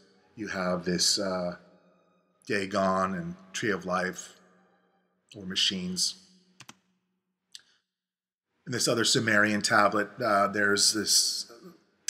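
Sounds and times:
man speaking: 0.0 - 1.6, 2.5 - 4.4, 5.3 - 6.2, 8.7 - 11.7
computer mouse clicks: 6.6 - 6.8.

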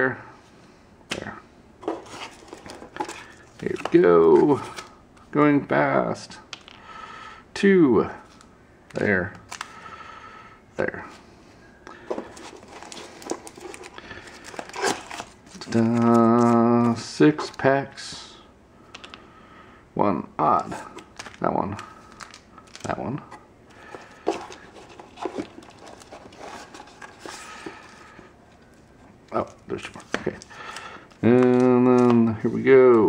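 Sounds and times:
foil packs crinkling and rustling: 12.1 - 17.0, 21.1 - 23.2, 23.8 - 28.2.

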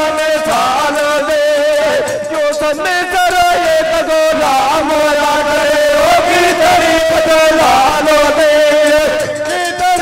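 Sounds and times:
man singing through a microphone: 0.0 - 10.0.

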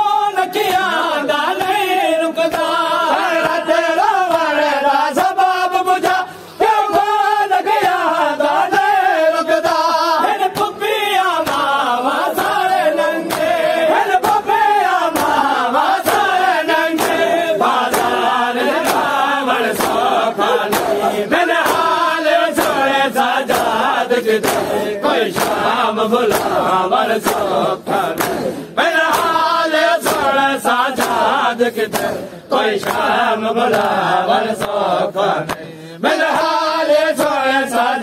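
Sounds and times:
men chanting together: 0.0 - 38.0
hands slapping chests: 10.4 - 36.5.

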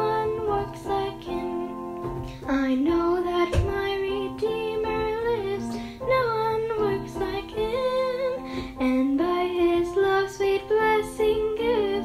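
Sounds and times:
electronic keyboard: 0.0 - 12.0
girl and woman singing: 0.0 - 12.0.

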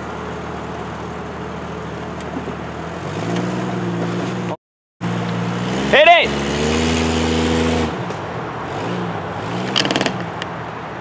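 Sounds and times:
car engine running under throttle: 0.0 - 11.0.

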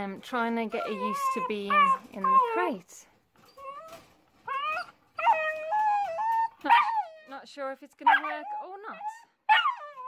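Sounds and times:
puppy whining: 0.6 - 2.8, 3.4 - 10.0.

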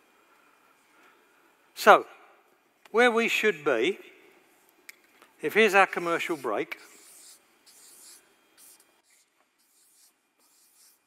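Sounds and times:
marker pen strokes on paper: 5.9 - 11.0.

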